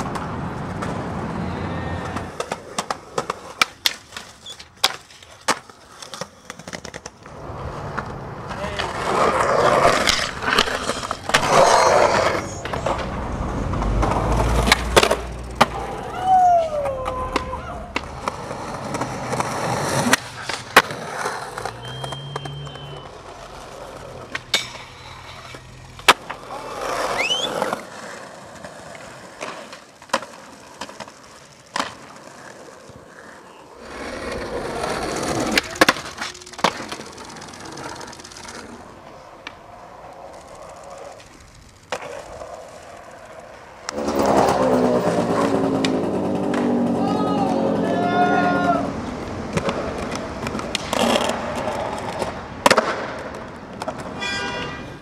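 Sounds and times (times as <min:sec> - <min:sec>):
skateboard pops and clacks: 0:00.0 - 0:01.3, 0:02.0 - 0:16.0, 0:16.7 - 0:44.4, 0:49.4 - 0:54.2
skateboard wheels rolling on pavement: 0:00.0 - 0:55.0.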